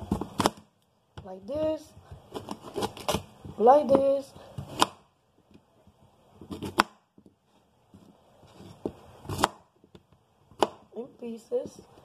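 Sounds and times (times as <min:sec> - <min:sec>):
knife scraping while cutting: 0:02.3 - 0:03.2.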